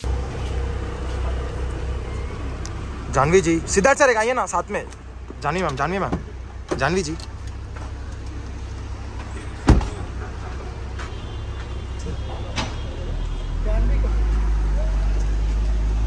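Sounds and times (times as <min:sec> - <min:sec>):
vehicle low rumble: 0:00.0 - 0:16.0
car door slamming shut: 0:09.6 - 0:10.1.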